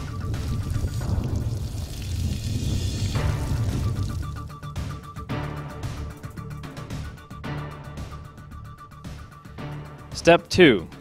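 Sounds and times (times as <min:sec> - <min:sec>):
shower water spraying: 0:00.0 - 0:05.1
low music: 0:00.0 - 0:11.0.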